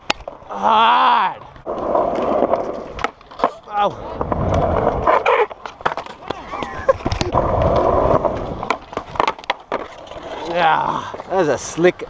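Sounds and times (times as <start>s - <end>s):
skateboard wheels rolling on concrete: 0.0s - 12.0s
skateboard knocks and clacks: 4.4s - 10.4s.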